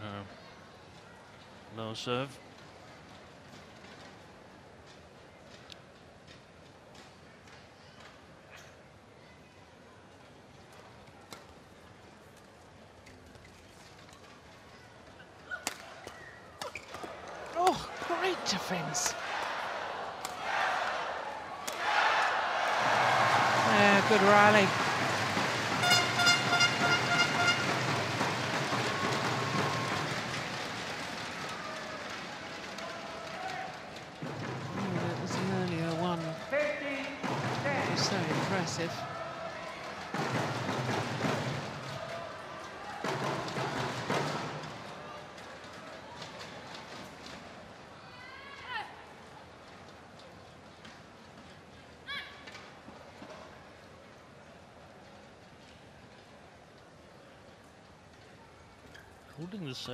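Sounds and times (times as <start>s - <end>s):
crowd cheering and shouting: 17.6s - 33.9s
horn-like toots: 25.8s - 27.8s.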